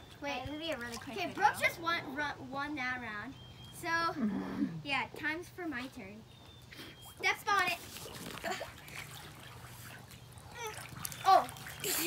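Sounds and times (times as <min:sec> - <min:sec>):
pool water sloshing and trickling: 0:00.0 - 0:02.6, 0:05.2 - 0:12.0.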